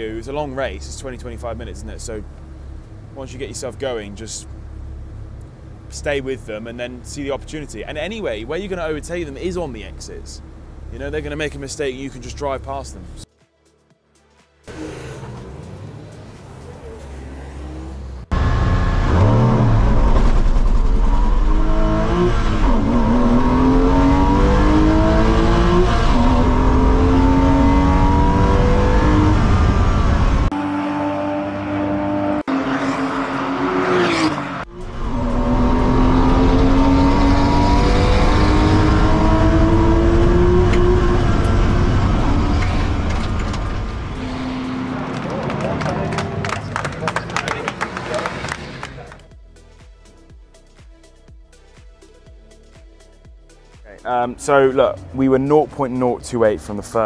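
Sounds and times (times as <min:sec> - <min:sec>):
race car engine accelerating: 0:14.7 - 0:49.3.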